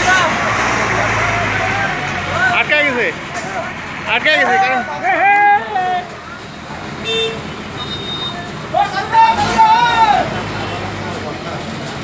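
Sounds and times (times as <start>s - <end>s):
high vehicle horn toot: 7.0s - 8.5s.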